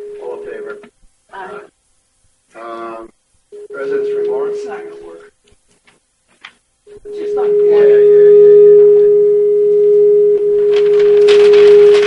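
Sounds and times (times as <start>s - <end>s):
microphone feedback tone: 0.0s - 0.9s, 3.5s - 5.2s, 6.9s - 12.0s
rustling noise: 5.4s - 6.7s, 10.4s - 12.0s.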